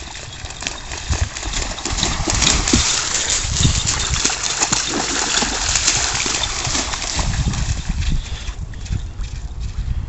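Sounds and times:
dog's paws splashing through water: 0.0s - 9.8s
wind rumble on microphone: 0.0s - 10.0s.

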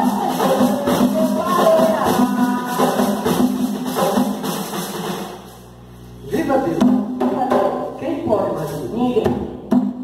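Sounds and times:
ritual drums and percussion: 0.0s - 5.9s, 6.7s - 10.0s.

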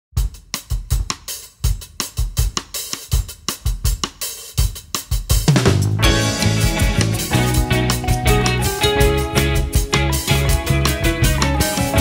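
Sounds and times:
drum kit beat: 0.1s - 12.0s
bass and other instruments: 0.2s - 12.0s.

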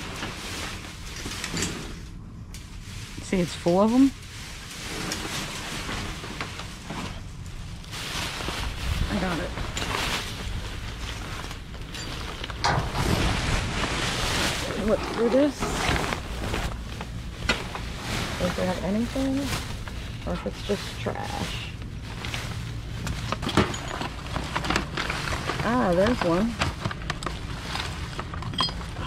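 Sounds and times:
plastic bag rustling and crinkling: 0.0s - 29.0s.

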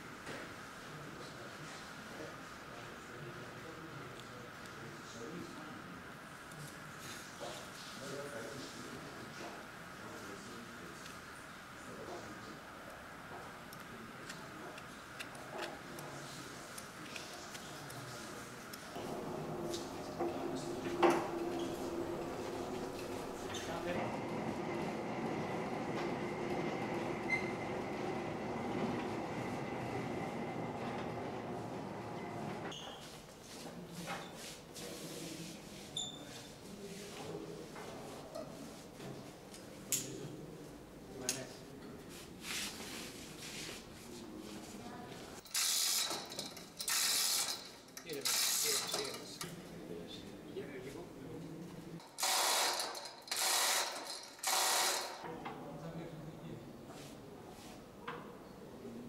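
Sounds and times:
pallet jack wheels rumbling: 19.0s - 32.7s.

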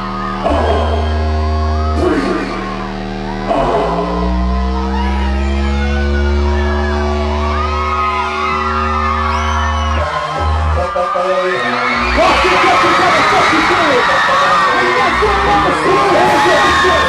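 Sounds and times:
crowd whooping and cheering: 0.0s - 17.0s
deep bass: 0.0s - 17.0s
synth chord: 0.0s - 17.0s.

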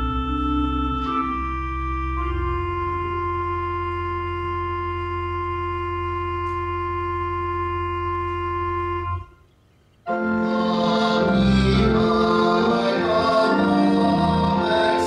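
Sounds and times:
church organ playing: 0.0s - 15.0s
congregation singing: 10.1s - 15.0s.

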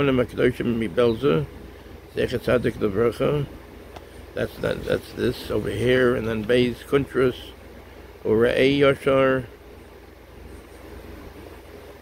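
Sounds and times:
faint background rumble and hiss: 0.0s - 12.0s.

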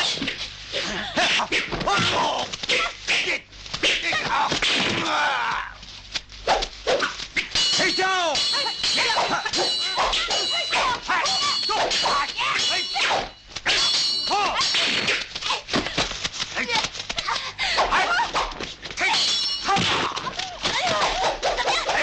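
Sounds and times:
fighters shouting and grunting: 0.8s - 5.8s, 7.6s - 15.6s
metal blades clanging: 7.4s - 15.3s, 19.0s - 22.0s.

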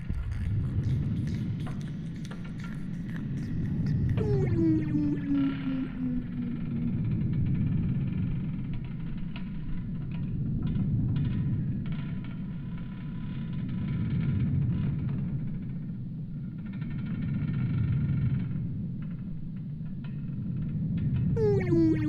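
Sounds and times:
low rumbling drone: 0.0s - 7.5s
falling tone: 4.2s - 6.9s, 21.4s - 22.0s
faint held high tones: 4.2s - 7.0s, 21.4s - 22.0s.

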